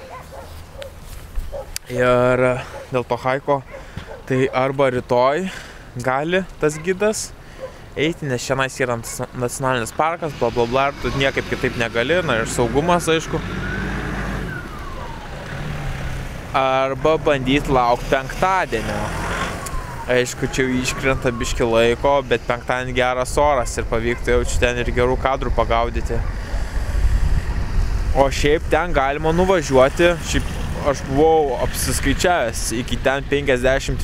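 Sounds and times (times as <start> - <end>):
car driving past: 10.3 - 20.1.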